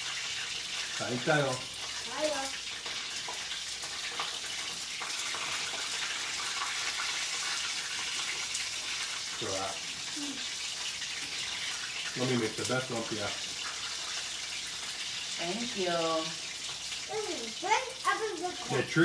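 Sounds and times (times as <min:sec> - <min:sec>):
food frying in oil: 0:00.0 - 0:19.0.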